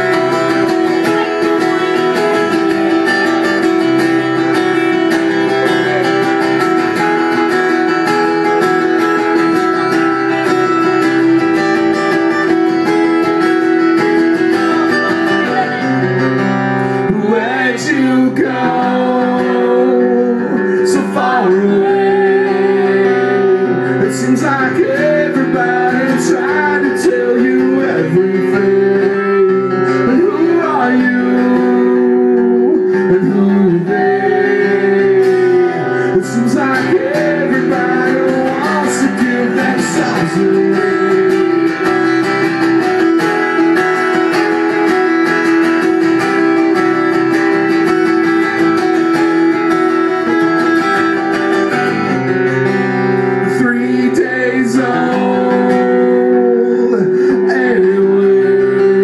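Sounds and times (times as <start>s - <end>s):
acoustic guitars strumming: 0.0s - 59.0s
man singing: 0.0s - 59.0s.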